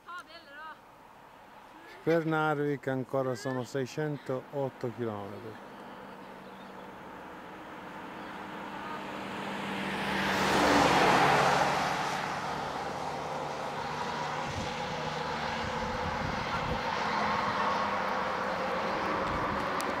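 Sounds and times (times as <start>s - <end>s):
steady road noise: 0.0s - 20.0s
vehicle passing on highway: 0.8s - 20.0s.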